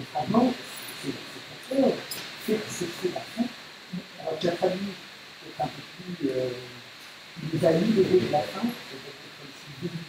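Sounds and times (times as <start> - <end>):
man speaking into microphone: 0.0 - 6.8, 7.4 - 10.0
background hiss: 0.0 - 10.0.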